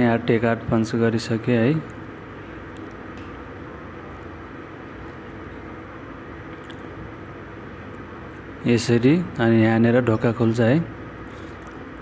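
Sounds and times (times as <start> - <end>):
metro station background hum: 0.0 - 12.0.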